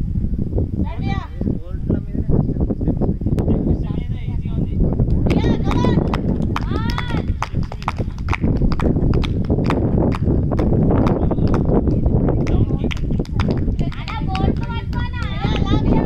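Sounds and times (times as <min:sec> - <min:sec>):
wind rumbling on microphone: 0:00.0 - 0:16.0.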